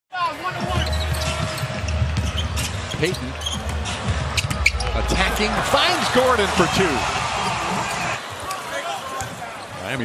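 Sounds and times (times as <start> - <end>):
arena crowd rumble: 0.3 - 10.0.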